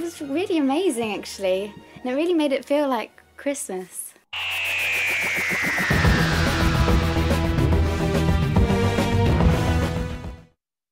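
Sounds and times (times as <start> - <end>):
quick pulsing beat: 4.4 - 8.2
high tone gliding downward: 4.4 - 8.5
heavy bass line: 4.4 - 8.8.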